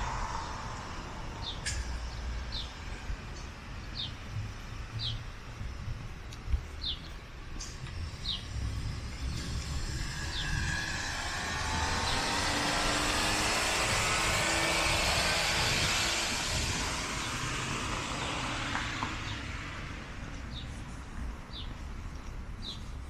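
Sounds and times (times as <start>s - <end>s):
vehicle passing on street: 0.0s - 23.0s
bird chirping: 4.9s - 5.3s, 6.7s - 11.0s.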